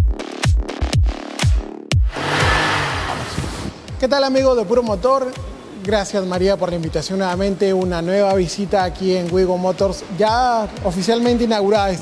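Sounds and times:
rushing car engine effect: 0:02.0 - 0:04.0.

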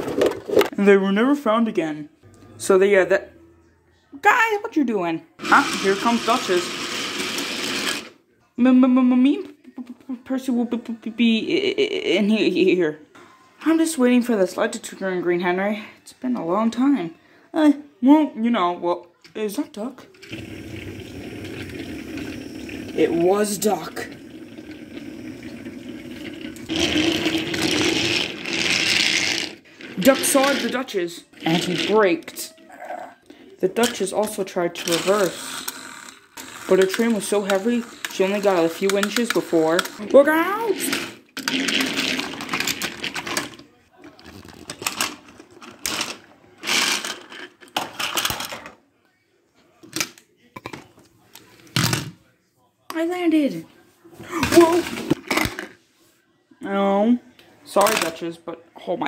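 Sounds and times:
toy train motor humming: 0:05.4 - 0:08.1, 0:34.9 - 0:38.5
plastic toy trains clattering: 0:34.8 - 0:43.6, 0:44.2 - 0:48.8.

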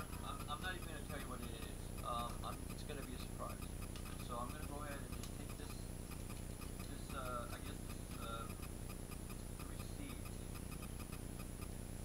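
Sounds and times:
quick even ticking: 0:00.0 - 0:11.8.

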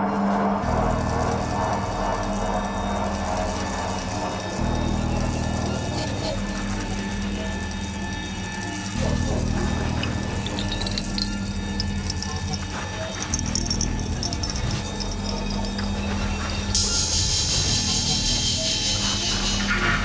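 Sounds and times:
high glitchy chirps: 0:05.4 - 0:18.8.

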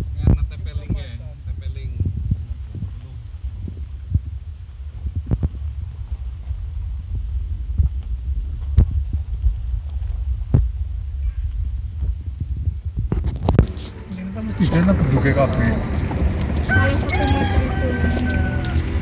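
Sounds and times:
car cabin rumble on gravel road: 0:00.0 - 0:19.0.

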